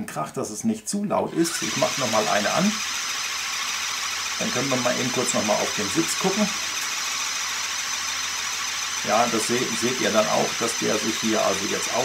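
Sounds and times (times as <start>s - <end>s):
motor-driven air pump running: 1.3s - 12.0s.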